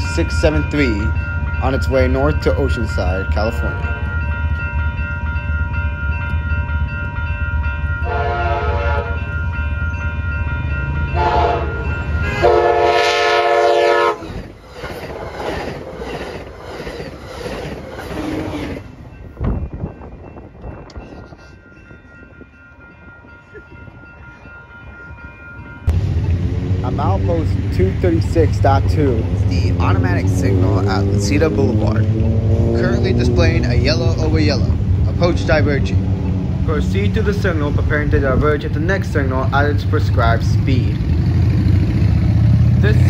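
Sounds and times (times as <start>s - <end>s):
crossing bells ringing: 0.0s - 17.9s, 18.5s - 43.0s
diesel locomotive rumble: 0.0s - 43.0s
train horn blasts: 8.0s - 9.3s, 11.1s - 14.3s.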